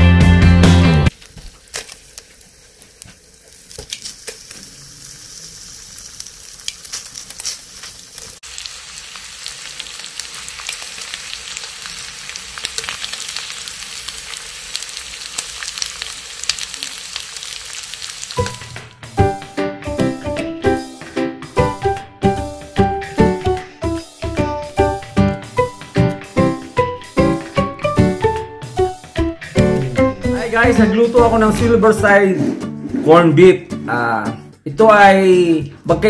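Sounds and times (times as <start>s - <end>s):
meat sizzling in oil: 1.1s - 19.3s.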